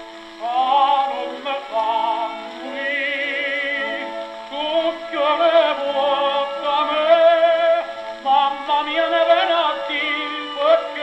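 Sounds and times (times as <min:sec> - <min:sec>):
tenor singing with vibrato: 0:00.0 - 0:11.0.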